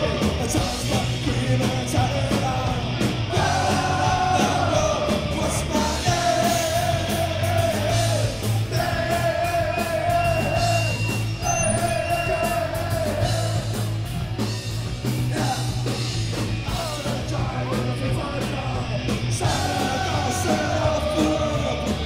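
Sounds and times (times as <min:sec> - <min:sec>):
shouted sung lead vocal: 0:00.0 - 0:14.0, 0:15.1 - 0:22.0
live punk rock band: 0:00.0 - 0:22.0.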